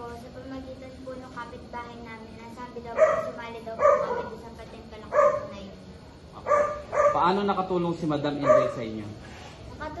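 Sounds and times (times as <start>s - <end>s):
dog barking: 2.9s - 4.4s, 5.1s - 5.6s, 6.4s - 7.4s, 8.3s - 9.0s.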